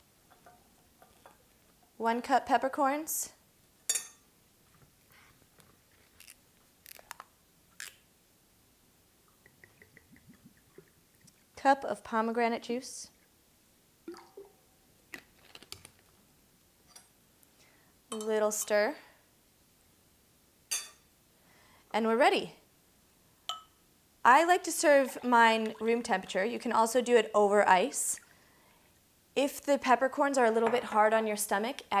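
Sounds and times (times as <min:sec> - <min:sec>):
metal spoon clinking glass jar: 0:23.5 - 0:23.7
glass and metal taps: 0:23.5 - 0:23.8.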